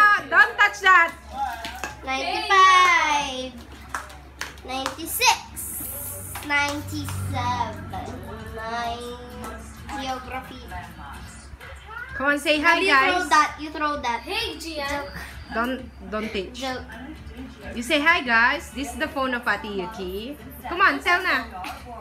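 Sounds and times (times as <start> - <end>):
girl singing in high voice: 5.8 - 12.2.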